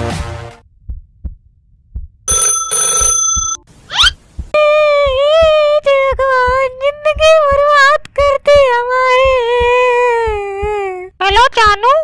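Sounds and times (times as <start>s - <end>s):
soft low thumps: 0.7s - 2.2s, 4.2s - 12.0s
phone ringing: 2.3s - 3.7s.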